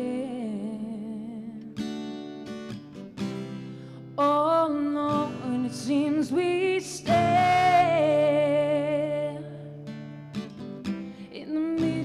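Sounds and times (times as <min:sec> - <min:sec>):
acoustic guitar strums: 0:01.7 - 0:04.3, 0:06.9 - 0:12.0.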